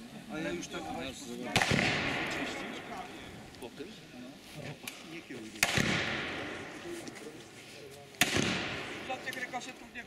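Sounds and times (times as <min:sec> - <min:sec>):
revolver shot with echo: 0:01.5 - 0:02.7, 0:05.6 - 0:06.8, 0:08.2 - 0:09.2.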